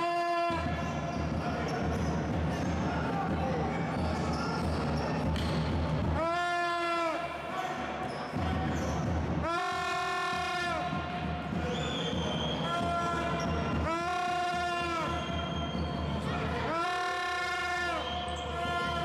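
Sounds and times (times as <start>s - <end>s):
sneakers squeaking on floor: 0.6s - 6.0s, 7.6s - 9.3s, 11.6s - 13.9s, 15.1s - 16.5s, 18.0s - 18.9s.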